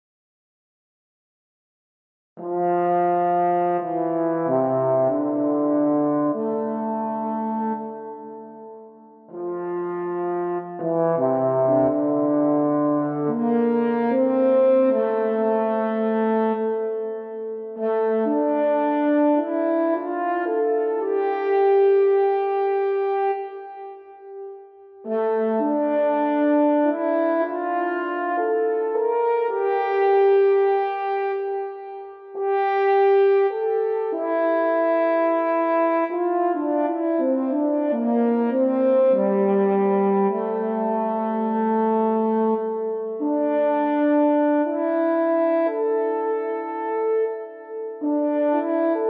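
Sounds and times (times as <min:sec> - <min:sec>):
french horn melody: 0:02.4 - 0:49.0.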